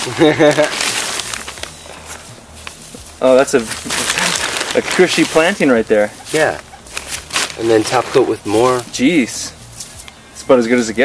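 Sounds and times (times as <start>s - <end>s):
pulsing laugh-like voice: 0.0s - 0.8s
hand scooping soil: 0.0s - 8.8s
plastic bag crinkling: 0.0s - 9.0s.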